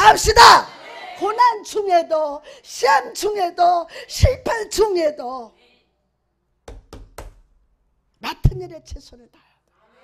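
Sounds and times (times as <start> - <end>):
knocks on wood: 6.7 - 7.4.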